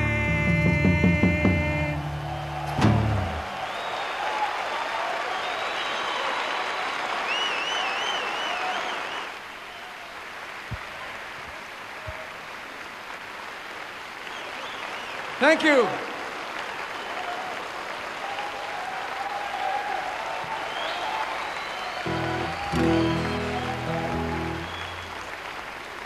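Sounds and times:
live rock band: 0:00.0 - 0:03.5, 0:22.0 - 0:25.2
audience applause: 0:02.0 - 0:26.0
warbling whistle: 0:20.7 - 0:25.3.

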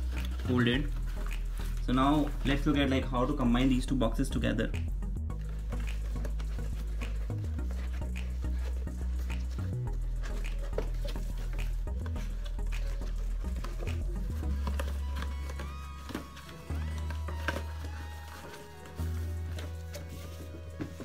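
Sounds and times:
background music: 0:00.0 - 0:21.0
paperboard boxes clicking: 0:05.8 - 0:21.0.

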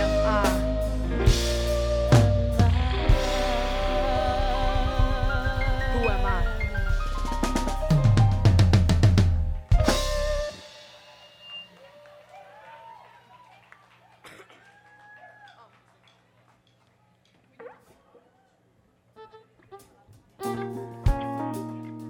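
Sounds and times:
drum and cymbal hit ringing: 0:00.0 - 0:11.8
live band playing: 0:00.0 - 0:12.3, 0:19.2 - 0:22.0.

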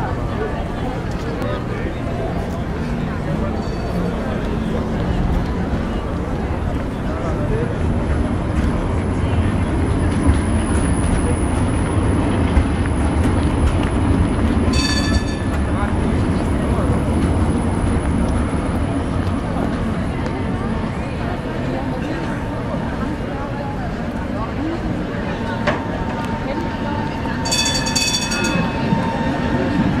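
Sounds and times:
crowd chatter: 0:00.0 - 0:30.0
tram wheels rumbling on rails: 0:00.0 - 0:30.0
tram warning bell ringing: 0:02.8 - 0:06.2, 0:14.5 - 0:18.6, 0:26.4 - 0:30.0.

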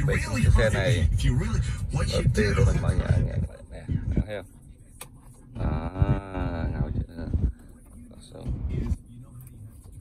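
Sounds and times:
talk radio through car speakers: 0:00.0 - 0:10.0.

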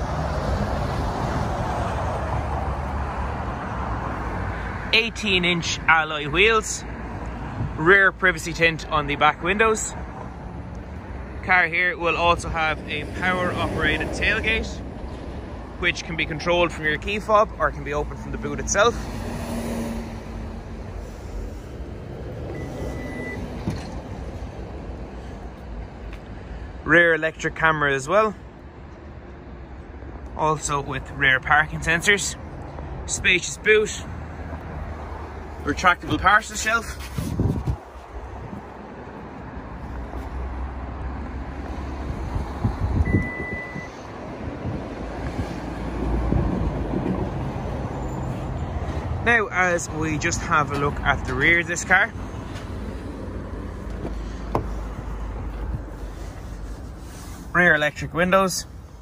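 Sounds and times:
traffic rumble: 0:00.0 - 0:59.0
wind noise: 0:36.9 - 0:38.8, 0:42.0 - 0:47.7
short high beep: 0:43.1 - 0:44.0.

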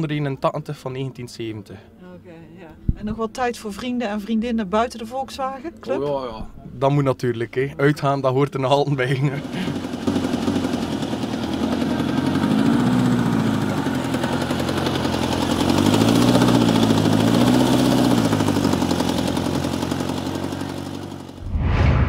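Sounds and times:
car engine revving: 0:09.4 - 0:20.0
short whoosh: 0:21.4 - 0:22.0.

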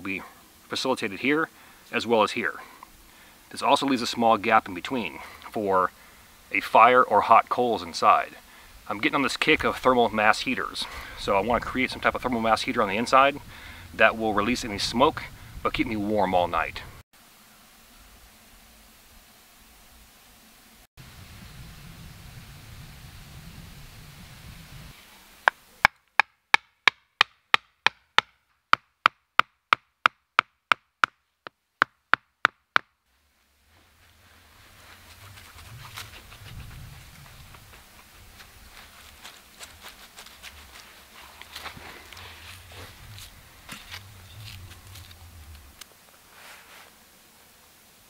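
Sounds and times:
leaves rustling: 0:00.0 - 0:25.9, 0:33.1 - 0:48.0
mallet knocking wooden stake: 0:25.5 - 0:32.9.

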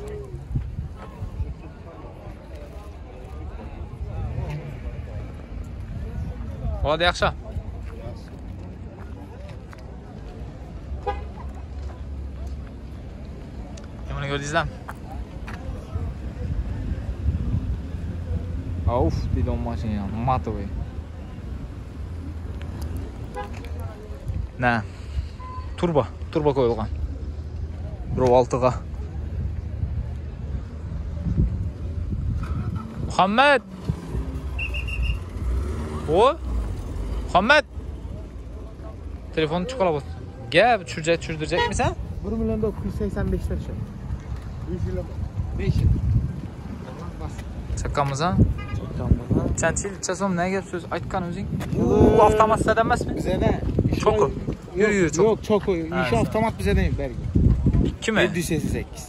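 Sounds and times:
person calling out: 0:51.8 - 0:52.5.

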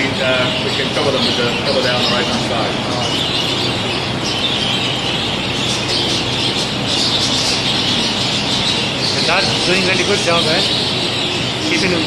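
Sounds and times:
budgerigars chattering and chirping: 0:00.0 - 0:12.0
extractor fans humming: 0:00.0 - 0:12.0.

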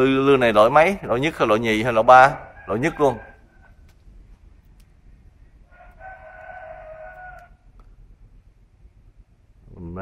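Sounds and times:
rooster crowing: 0:01.9 - 0:04.0, 0:05.6 - 0:07.8.

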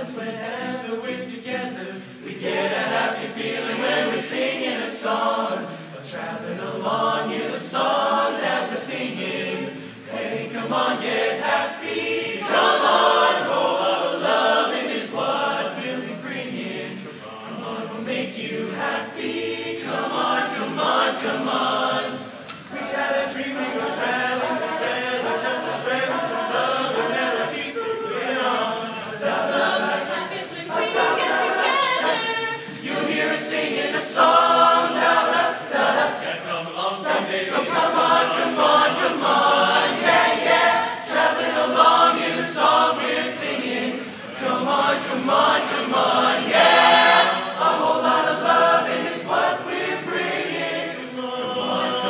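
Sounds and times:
mixed chorus singing a cappella: 0:00.0 - 0:52.0.

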